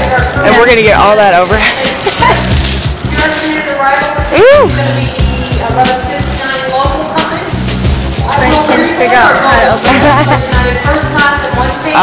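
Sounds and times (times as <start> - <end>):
background music: 0.0 - 12.0
plastic bags crinkling: 0.0 - 12.0.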